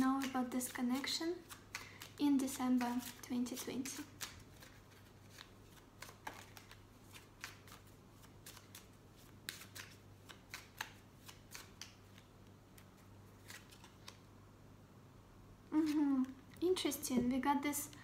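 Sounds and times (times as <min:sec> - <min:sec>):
cards being shuffled: 0:00.0 - 0:14.3.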